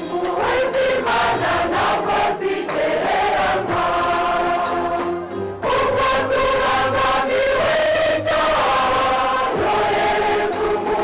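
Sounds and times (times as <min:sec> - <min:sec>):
church choir singing a hymn: 0:00.0 - 0:11.0.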